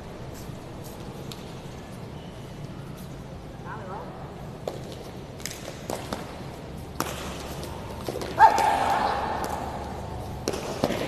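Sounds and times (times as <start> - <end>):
loud shout of voices: 8.4 - 9.4.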